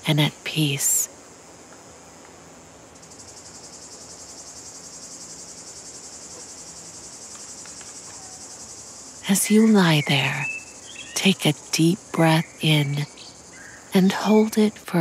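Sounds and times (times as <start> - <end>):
fast pulsing insect trill: 0.0 - 15.0
high-pitched insect chorus: 0.0 - 15.0.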